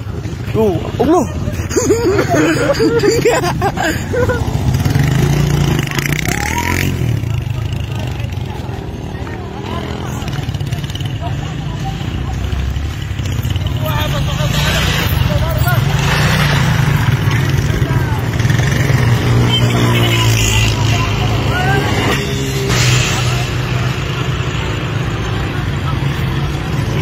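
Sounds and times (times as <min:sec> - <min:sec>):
people's voices: 0:00.0 - 0:27.0.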